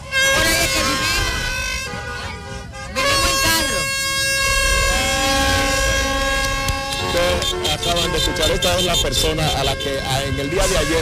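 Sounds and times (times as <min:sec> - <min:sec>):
vehicle horns blasting: 0:00.0 - 0:11.0.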